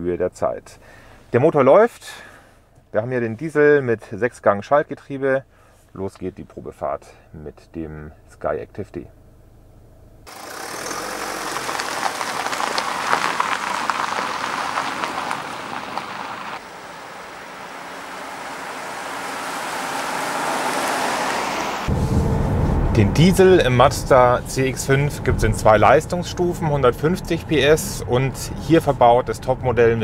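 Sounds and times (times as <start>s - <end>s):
diesel engine hum: 9.1s - 30.0s
tyres and wind hissing: 10.3s - 28.5s.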